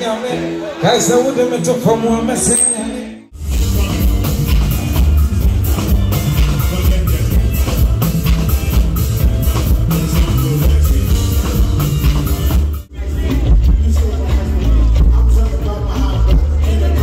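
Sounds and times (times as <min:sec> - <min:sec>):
electric bass guitar: 0:03.3 - 0:17.0
drum kit steady beat: 0:03.4 - 0:17.0
electric guitar: 0:03.4 - 0:17.0.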